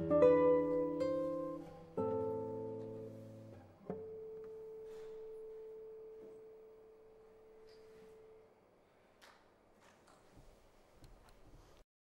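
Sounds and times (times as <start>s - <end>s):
classical guitar note ringing: 0.0s - 8.6s.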